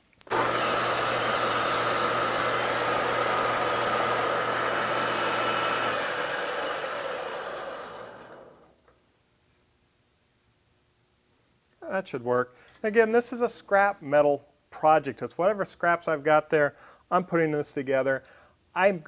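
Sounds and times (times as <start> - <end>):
lathe motor hum: 0.3 - 8.7.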